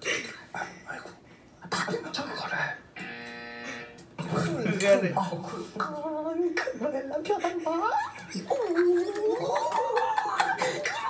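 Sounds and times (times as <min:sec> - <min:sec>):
steady buzzing tone: 0:03.0 - 0:04.1.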